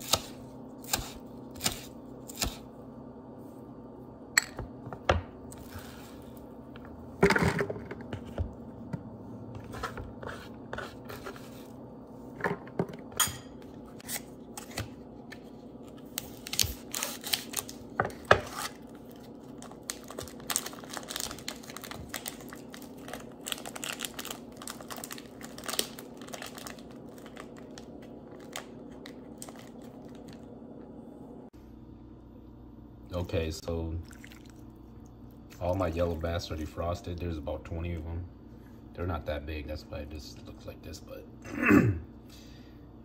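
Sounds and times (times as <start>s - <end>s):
steady low hum: 0.0s - 43.0s
onion skin crinkling: 15.8s - 30.4s.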